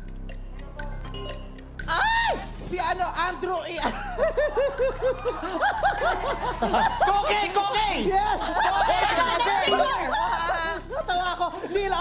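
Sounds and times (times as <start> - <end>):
person laughing: 3.8 - 7.3.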